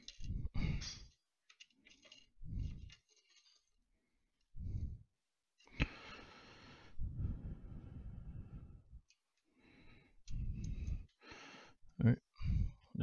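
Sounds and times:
man breathing and sighing: 0.0s - 1.2s, 5.7s - 13.0s
metal parts rustling and knocking: 0.0s - 3.9s.

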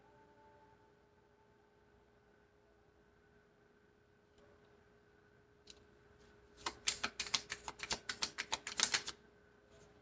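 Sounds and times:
cards being shuffled: 6.5s - 9.2s.

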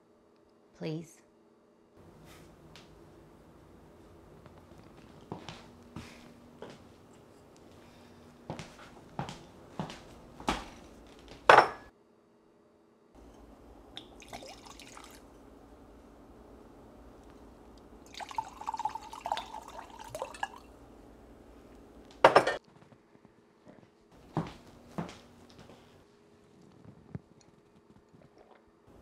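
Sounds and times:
glassware knocks and clinks: 11.5s - 11.9s, 22.2s - 22.6s
loud glass clink: 11.5s - 11.9s
drink poured into a glass: 14.0s - 15.3s, 18.1s - 20.8s.

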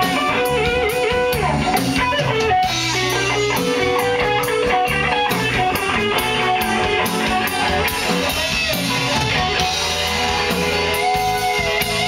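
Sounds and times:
bass: 0.0s - 12.0s
drum kit steady beat: 0.0s - 12.0s
electric guitar lines: 0.0s - 12.0s.

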